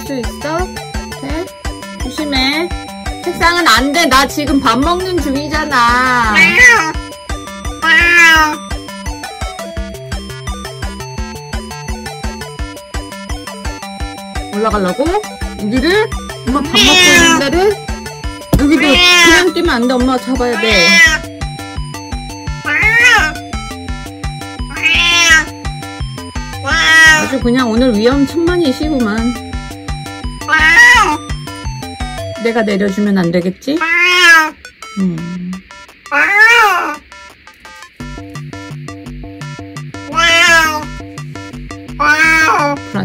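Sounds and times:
background music: 0:00.0 - 0:33.8, 0:34.6 - 0:43.0
cat meowing: 0:06.0 - 0:07.1, 0:07.7 - 0:08.7, 0:16.6 - 0:17.6, 0:18.6 - 0:19.6, 0:20.5 - 0:21.3, 0:22.6 - 0:23.4, 0:24.6 - 0:25.6, 0:26.5 - 0:27.4, 0:30.4 - 0:31.3, 0:33.8 - 0:34.6, 0:36.1 - 0:37.0, 0:40.1 - 0:41.0, 0:42.0 - 0:42.9.

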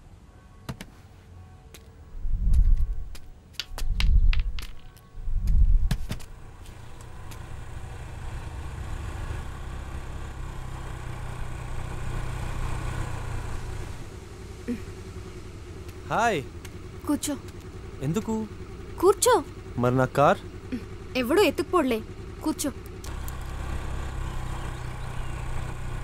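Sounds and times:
motor scooter engine approaching: 0:06.2 - 0:26.0.

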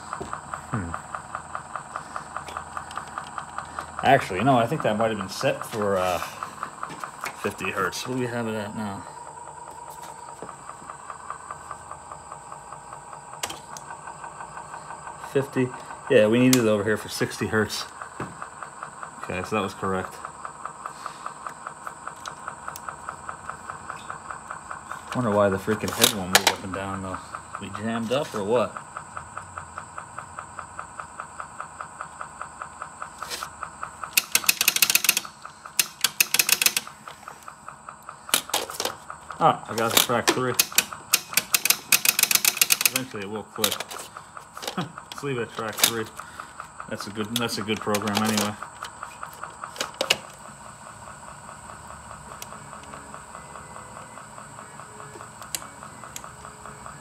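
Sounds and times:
rapid fine ticking: 0:00.0 - 0:57.0
tape deck motor hum and whir: 0:00.0 - 0:57.0
sharp mechanical clicks: 0:30.8 - 0:50.6.

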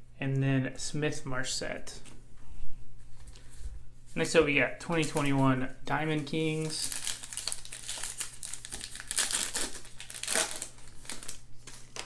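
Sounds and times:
plastic wrapper tearing and crinkling: 0:06.2 - 0:12.0.

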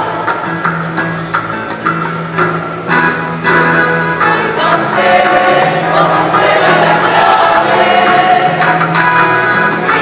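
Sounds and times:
choir singing held notes: 0:04.2 - 0:10.0.

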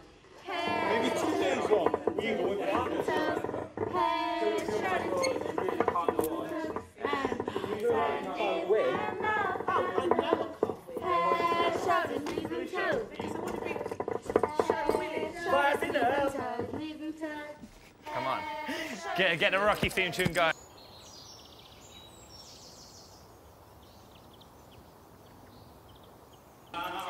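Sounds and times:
people singing and calling out: 0:00.4 - 0:20.5.

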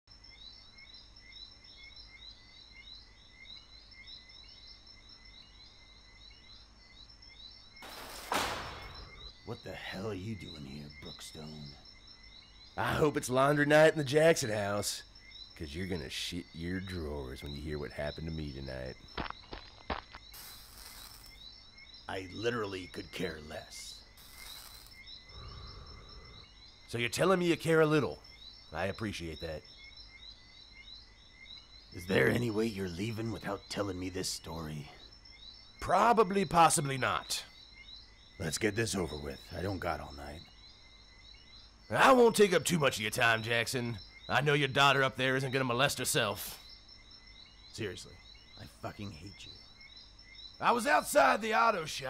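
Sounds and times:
low steady hiss: 0:00.2 - 0:19.1, 0:20.1 - 0:52.0
high chirps chorus: 0:00.6 - 0:52.0
sudden loud noise burst: 0:07.8 - 0:09.2.

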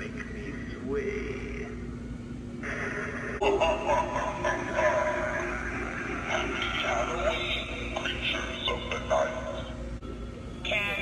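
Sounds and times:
processed spooky voice from speaker: 0:02.6 - 0:09.8.

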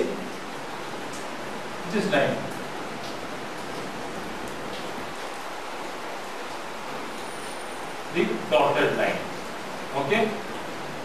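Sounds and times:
background recording hiss: 0:00.0 - 0:11.0.

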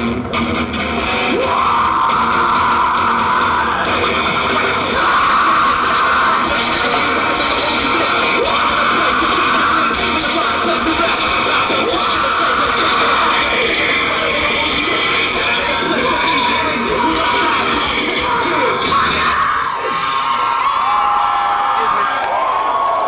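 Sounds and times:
distorted electric guitar riff: 0:00.0 - 0:20.1
heavy rock band playing: 0:00.0 - 0:20.1
drums: 0:00.0 - 0:22.0.

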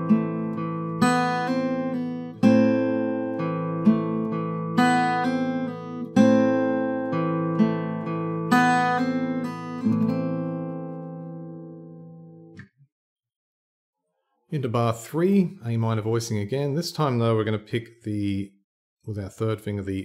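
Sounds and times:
fingerpicked acoustic guitar: 0:00.0 - 0:12.6.

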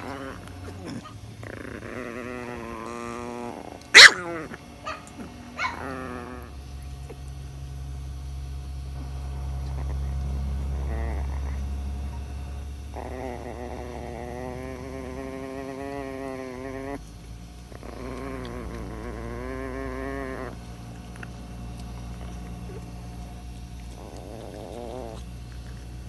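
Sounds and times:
small dog growling: 0:00.0 - 0:07.4, 0:08.9 - 0:26.0.

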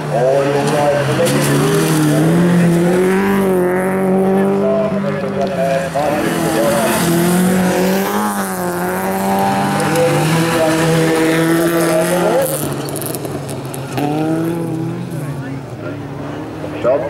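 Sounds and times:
race car engines revving: 0:00.0 - 0:17.0.

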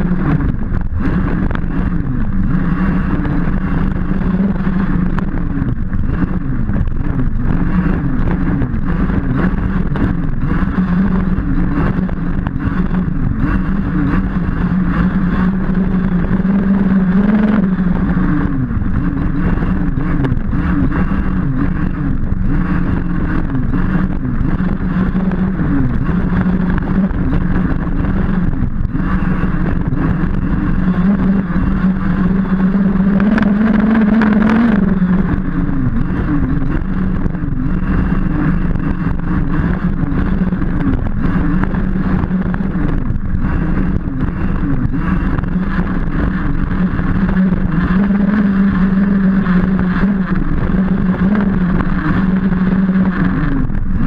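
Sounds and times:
two-stroke engine revving: 0:00.0 - 0:54.0.

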